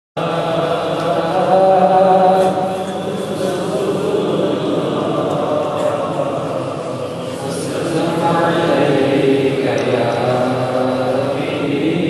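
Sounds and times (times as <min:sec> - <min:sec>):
man chanting slow melody: 0:00.7 - 0:12.0.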